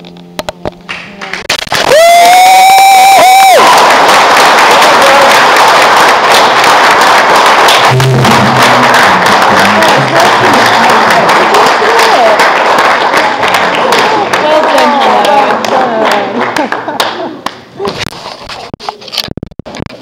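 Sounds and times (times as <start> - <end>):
audience applause and cheering: 0.9 - 17.5.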